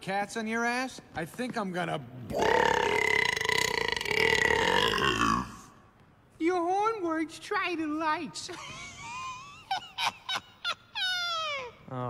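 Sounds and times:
man burping: 0:02.3 - 0:05.7.

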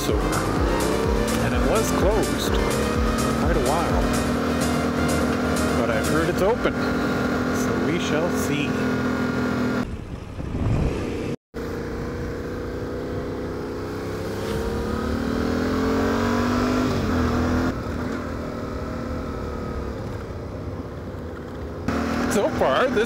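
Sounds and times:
motorcycle engine accelerating: 0:00.0 - 0:23.0
road and wind noise: 0:00.0 - 0:23.0.

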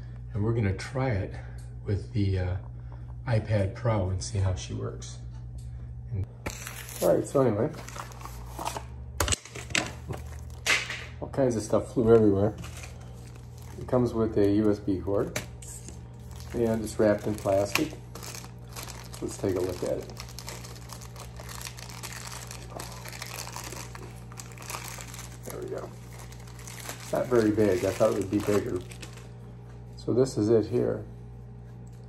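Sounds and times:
plastic wrap crinkling: 0:06.5 - 0:11.0, 0:11.9 - 0:29.5.

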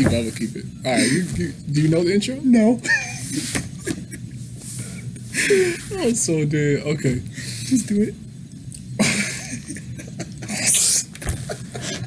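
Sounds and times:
men laughing: 0:02.8 - 0:05.9, 0:09.0 - 0:12.0
breathy wheezing laugh: 0:11.4 - 0:12.0.

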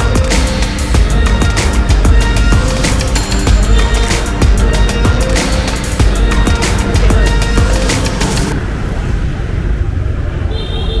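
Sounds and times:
electronic music: 0:00.0 - 0:08.6
motorbike road noise: 0:00.0 - 0:11.0
street traffic: 0:00.0 - 0:11.0.

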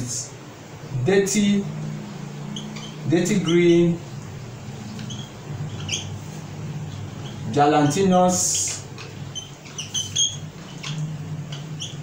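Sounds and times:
marker squeaking on whiteboard: 0:01.6 - 0:12.0.

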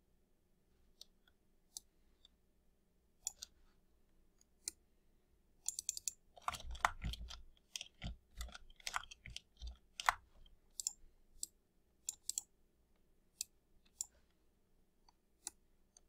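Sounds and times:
mouse clicks: 0:03.2 - 0:03.6, 0:05.6 - 0:12.5, 0:13.4 - 0:14.2
keyboard typing: 0:05.7 - 0:11.0.

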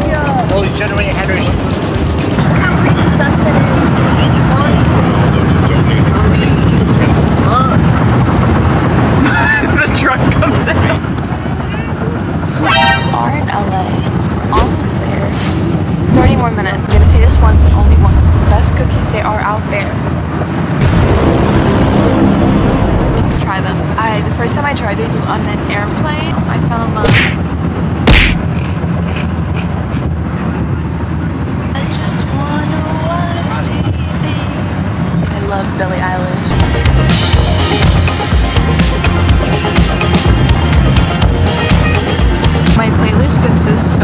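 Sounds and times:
voices: 0:00.0 - 0:20.3, 0:23.1 - 0:27.5, 0:28.1 - 0:38.4, 0:41.4 - 0:44.0
vehicle horn toot: 0:12.6 - 0:13.4.

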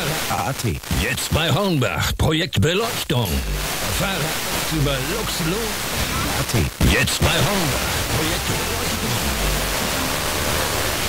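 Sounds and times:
faint radio broadcast: 0:00.0 - 0:11.0
radio static hiss: 0:00.0 - 0:11.0.

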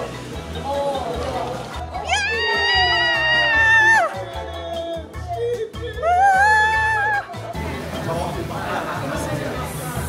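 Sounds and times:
music with steady beat: 0:00.0 - 0:10.0
woman screaming: 0:02.0 - 0:04.3, 0:05.9 - 0:07.3.

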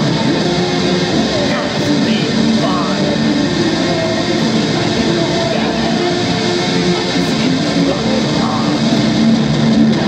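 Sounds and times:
distorted electric string instrument: 0:00.0 - 0:10.0.

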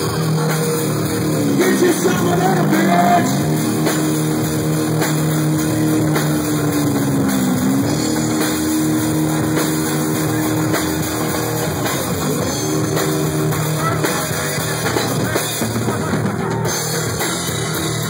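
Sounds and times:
electric bass solo: 0:00.0 - 0:18.0.

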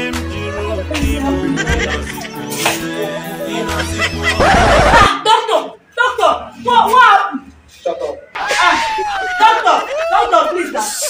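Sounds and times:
woman shouting: 0:08.5 - 0:10.7.

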